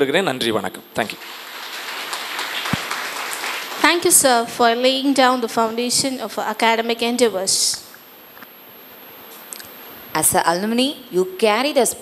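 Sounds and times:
audience applauding: 1.1 - 4.5.

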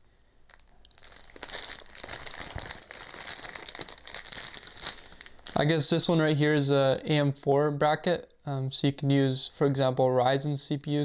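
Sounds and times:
plastic bags crinkling: 0.5 - 5.9.

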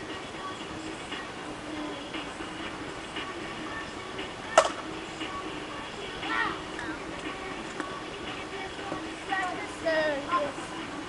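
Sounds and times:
faint background hum: 0.0 - 11.0
plastic bat hitting ball: 4.6 - 4.8.

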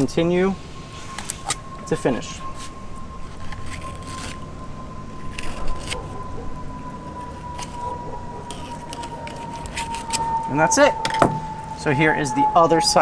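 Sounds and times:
steady low rumble: 0.0 - 13.0
thin high tone: 0.0 - 13.0
knife scraping fish: 3.2 - 4.4, 5.1 - 6.1.

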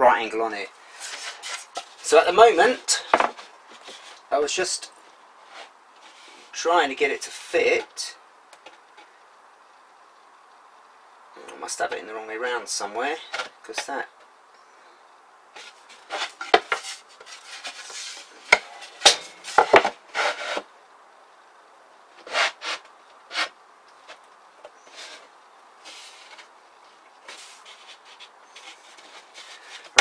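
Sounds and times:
board scraping and knocking on cabinet: 3.0 - 4.1, 15.6 - 20.7.

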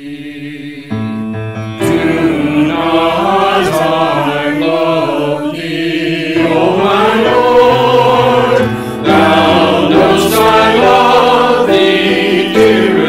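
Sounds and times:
mixed choir singing a hymn: 0.0 - 1.1, 1.8 - 13.0
piano accompaniment: 0.0 - 13.0.

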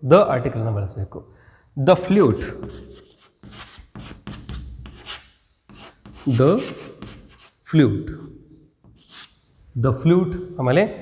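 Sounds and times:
chalk scratching on chalkboard: 2.5 - 7.7, 8.8 - 9.5
man speaking: 9.8 - 11.0.

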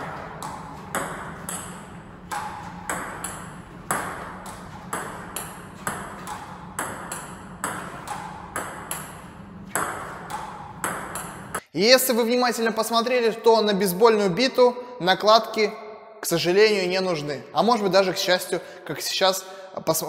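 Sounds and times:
table tennis ball clicking: 0.3 - 11.6.

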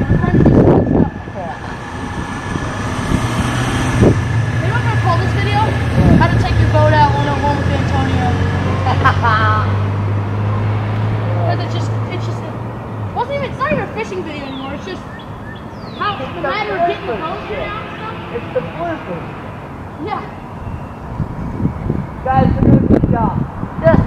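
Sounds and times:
engine idling: 0.0 - 8.3.

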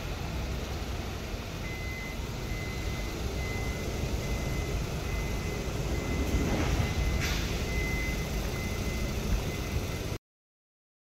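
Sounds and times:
low rumbling background noise: 0.0 - 10.2.

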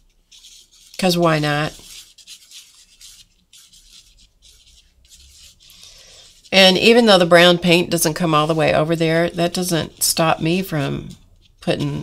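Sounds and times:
pen nib scratching on paper: 0.4 - 6.8.

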